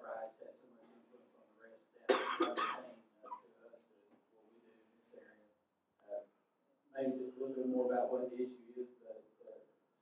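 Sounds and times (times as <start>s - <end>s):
person coughing: 2.1s - 3.4s.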